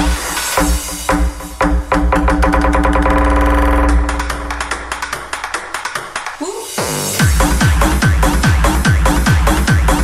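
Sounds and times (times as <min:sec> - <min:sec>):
electronic dance music: 0:03.9 - 0:10.0.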